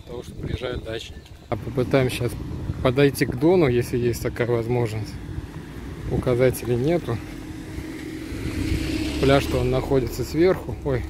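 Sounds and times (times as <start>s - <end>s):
vehicle engine hum: 1.4s - 11.0s.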